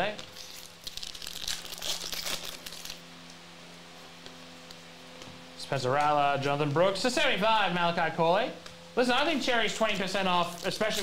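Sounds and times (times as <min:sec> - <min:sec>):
trading cards rustling: 0:00.2 - 0:03.0, 0:10.4 - 0:11.0.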